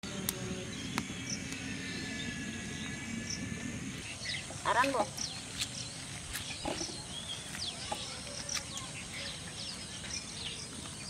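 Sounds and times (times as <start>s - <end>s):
small birds chirping: 0.1s - 11.0s.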